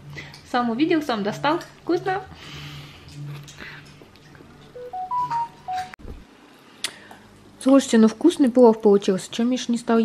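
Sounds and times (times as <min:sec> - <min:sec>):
electronic chime beeps: 0:04.8 - 0:06.0.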